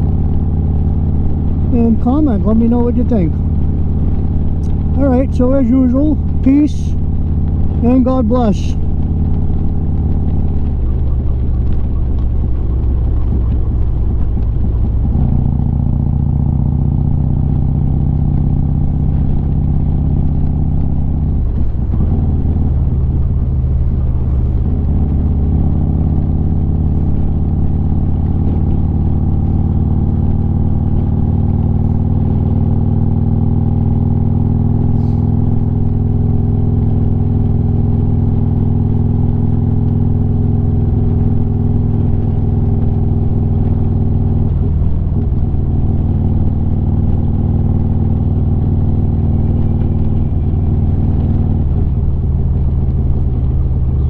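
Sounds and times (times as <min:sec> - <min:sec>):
motorcycle engine cruising: 0:00.0 - 0:54.0.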